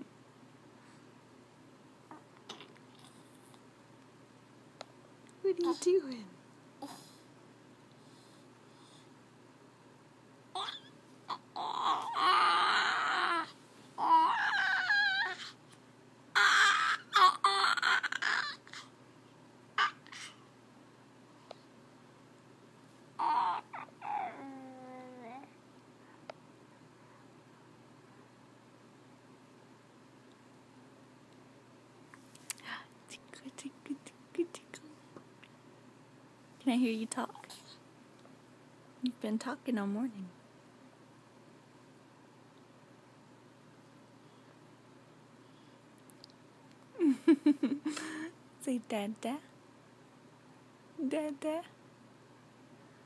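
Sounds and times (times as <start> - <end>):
baby squeaks: 10.6 - 10.9
baby cooing and babbling: 10.6 - 15.6, 16.4 - 18.9, 19.8 - 20.4, 23.2 - 25.6.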